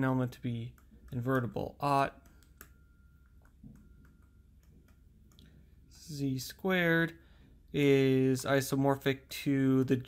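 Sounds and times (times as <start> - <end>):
steady low hum: 0.0 - 10.0
stylus tapping on tablet screen: 0.3 - 5.7.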